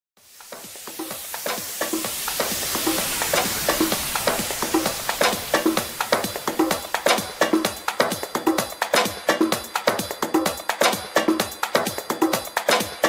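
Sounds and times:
electronic trance music beat: 0:00.2 - 0:13.0
hissing noise wash: 0:00.2 - 0:13.0.

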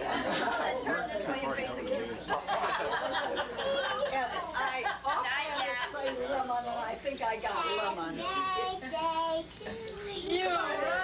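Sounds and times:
child singing: 0:07.6 - 0:10.4.

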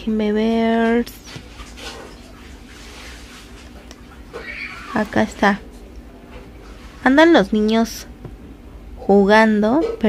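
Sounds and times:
household background noise: 0:00.0 - 0:10.0
faint high-pitched wavering cry: 0:04.3 - 0:05.1.

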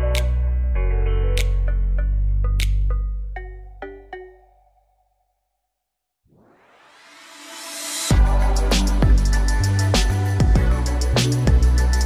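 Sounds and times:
rising swoosh riser: 0:06.3 - 0:12.0
background music: 0:08.1 - 0:12.0.

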